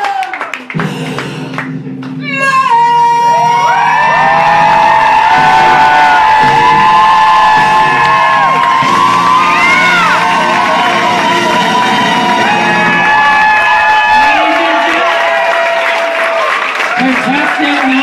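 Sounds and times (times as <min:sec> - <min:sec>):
crowd whooping and cheering: 0:00.0 - 0:00.8, 0:02.3 - 0:18.0
backing music: 0:00.6 - 0:15.6.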